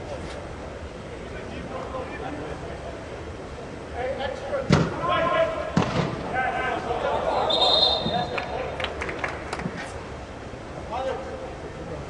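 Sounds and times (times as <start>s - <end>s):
players shouting: 4.6s - 8.8s
soccer ball kick thud: 4.7s - 5.0s, 5.8s - 6.3s.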